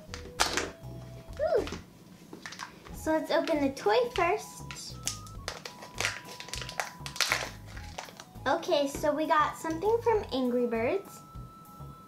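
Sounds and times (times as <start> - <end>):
plastic wrapper crinkling: 0.0 - 1.8, 2.4 - 8.4.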